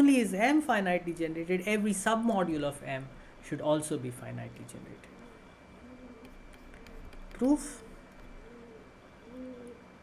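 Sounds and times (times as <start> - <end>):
pigeon cooing: 5.1 - 10.0.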